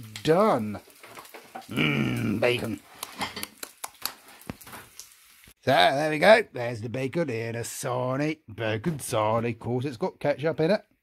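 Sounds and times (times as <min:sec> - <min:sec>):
bacon frying in a pan: 0:00.0 - 0:05.6.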